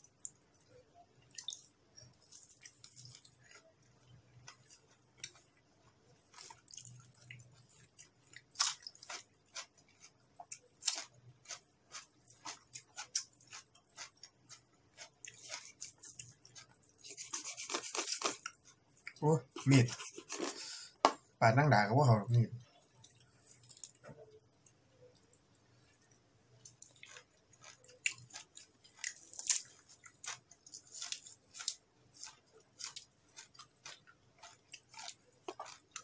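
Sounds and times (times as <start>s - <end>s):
chewing: 0.1s - 20.7s, 22.6s - 36.0s.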